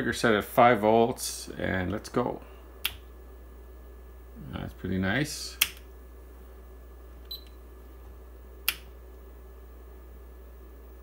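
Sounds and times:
low steady hum: 0.0 - 11.0
power switch click: 8.6 - 8.9.

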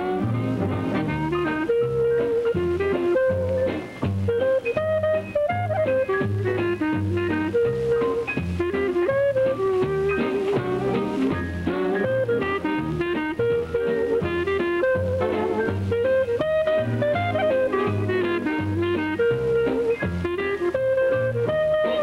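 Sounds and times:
band rhythm section: 0.0 - 22.0
bass line: 0.0 - 22.0
clarinet jazz melody: 0.0 - 22.0.

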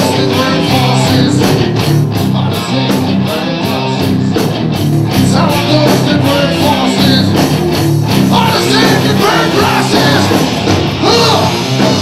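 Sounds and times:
bass guitar: 0.0 - 12.0
electric guitar: 0.0 - 12.0
steady drum beat: 0.0 - 12.0.

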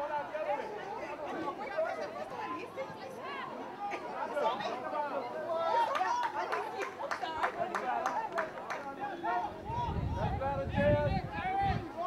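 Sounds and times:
crowd voices talking and calling: 0.0 - 12.0.

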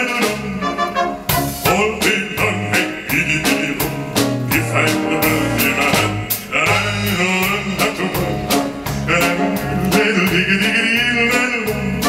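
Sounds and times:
man singing: 0.0 - 0.9, 1.5 - 12.0
drums and cymbals: 0.0 - 12.0.

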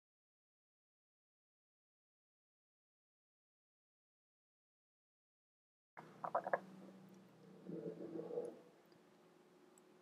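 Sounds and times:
faint steady hum: 6.0 - 10.0.

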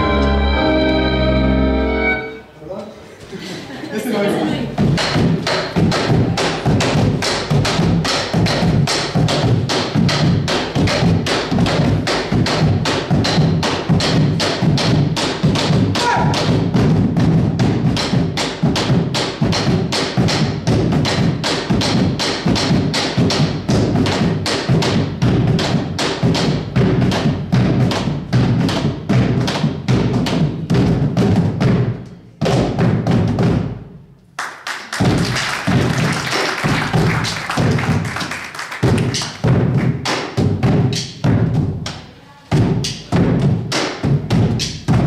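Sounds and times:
bass drums beaten with sticks: 4.7 - 34.0, 35.0 - 38.1, 38.8 - 41.9, 42.5 - 45.0.

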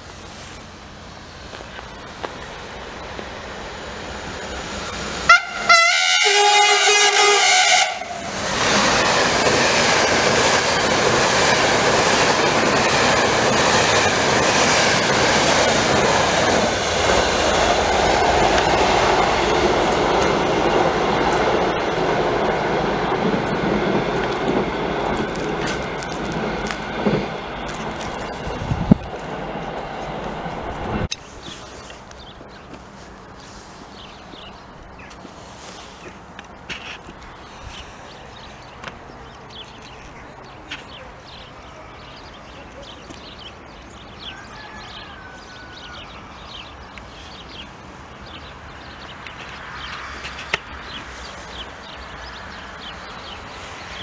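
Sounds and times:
passenger train passing: 0.0 - 54.0
train horn blast: 5.3 - 8.3
wheels clattering over rail joints: 18.2 - 32.8.

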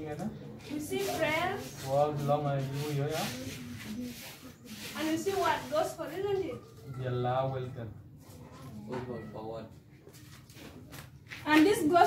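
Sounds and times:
marker rubbing on whiteboard: 0.7 - 6.3.

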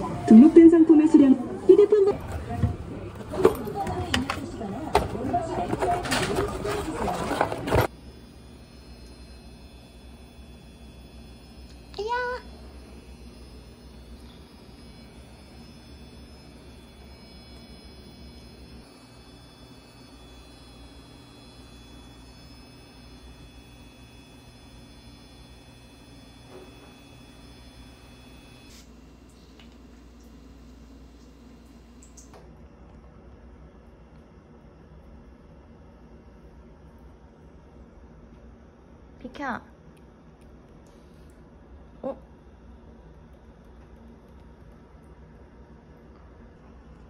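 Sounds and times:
shop bustle and voices: 0.0 - 8.0
washing machine humming: 0.0 - 47.0.

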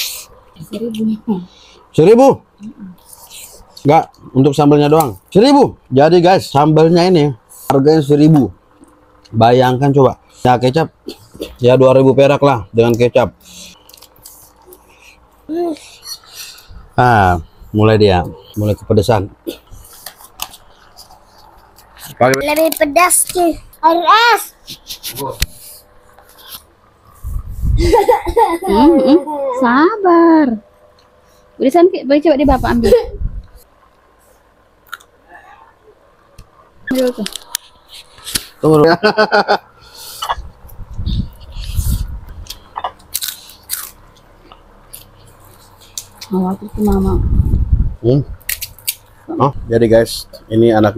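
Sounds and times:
mouth clicks and smacks: 34.8 - 35.2
person chewing crunchy food: 42.4 - 46.2.

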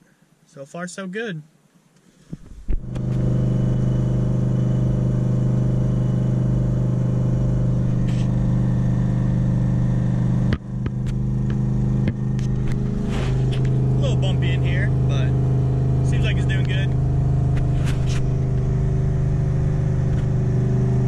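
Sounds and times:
engine drone inside cab: 2.0 - 21.0.

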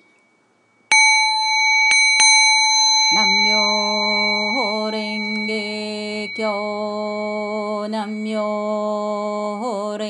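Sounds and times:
prayer bell ringing: 0.9 - 8.7.

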